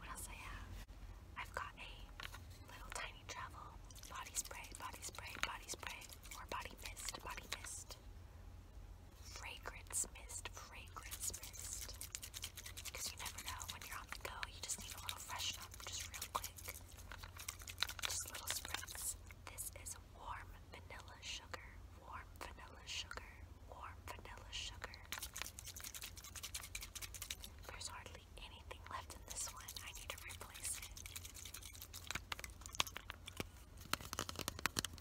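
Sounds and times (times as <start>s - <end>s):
soft whispering: 0.0s - 8.0s, 9.2s - 17.3s, 17.9s - 25.2s, 27.6s - 31.7s.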